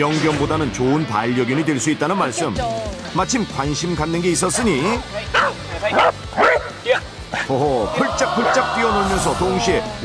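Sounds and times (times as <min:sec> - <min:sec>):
dog barking: 0:05.3 - 0:07.1.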